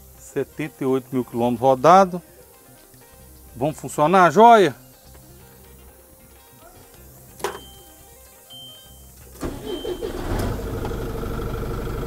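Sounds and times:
diesel engine cranking and idling: 9.4s - 12.0s.

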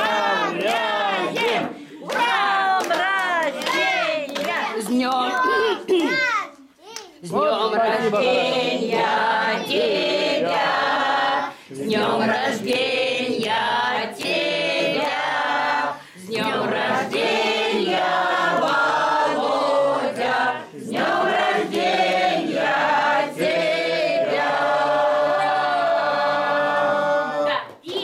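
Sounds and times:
choir singing: 0.0s - 2.8s, 7.2s - 27.5s.

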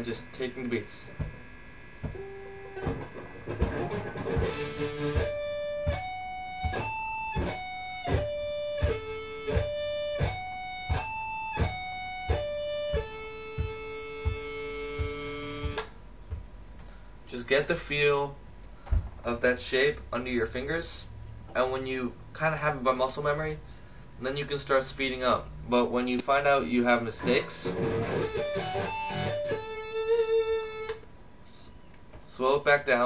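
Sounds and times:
electric guitar arpeggio: 2.0s - 15.8s, 27.2s - 31.0s
metronome clicks: 3.6s - 16.0s.

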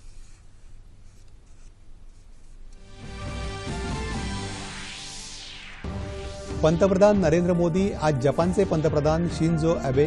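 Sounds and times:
news theme music: 2.8s - 10.0s.

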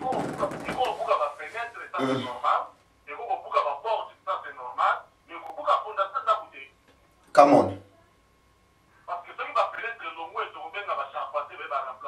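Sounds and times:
person talking: 0.0s - 6.6s.

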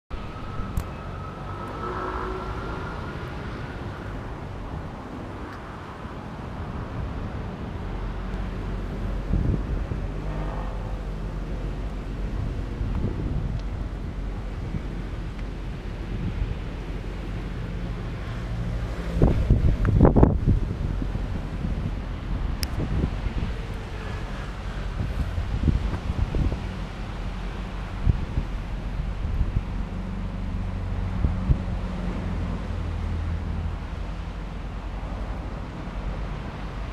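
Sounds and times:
wind noise on microphone: 0.1s - 36.9s.

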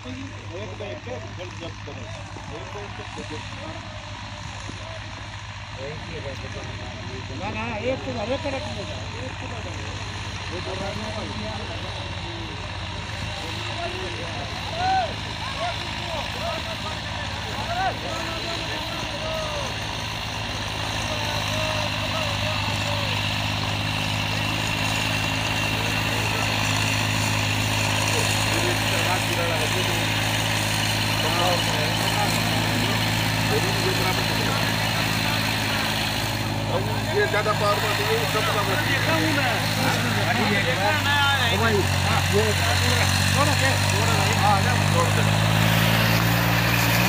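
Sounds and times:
tractor engine running under load: 0.0s - 47.0s.

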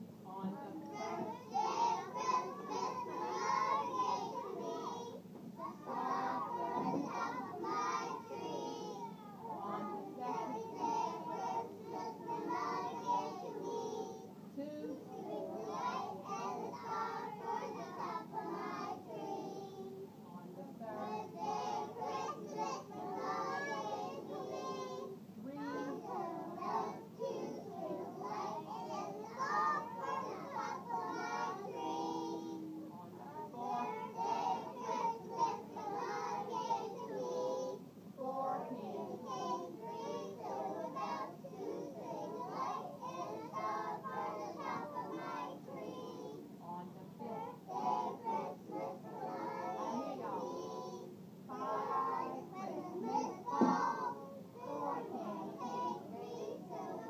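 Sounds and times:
children singing together: 0.8s - 20.1s, 20.8s - 57.0s.

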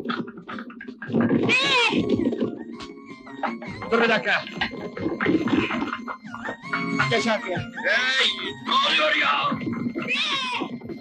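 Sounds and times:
film soundtrack music: 0.0s - 11.0s
noisy action mix: 0.0s - 11.0s.

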